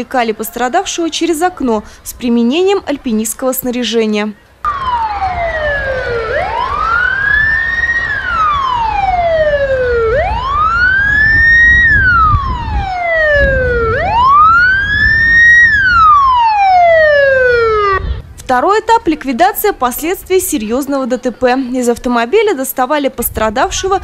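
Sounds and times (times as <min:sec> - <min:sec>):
wailing siren: 0:04.6 - 0:18.2
low rumble: 0:17.3 - 0:18.4.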